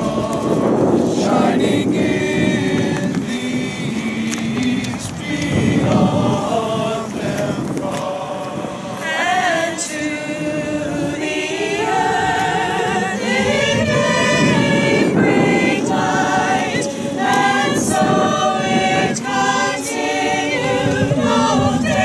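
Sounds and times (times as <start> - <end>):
mixed choir singing a carol: 0.0 - 22.0.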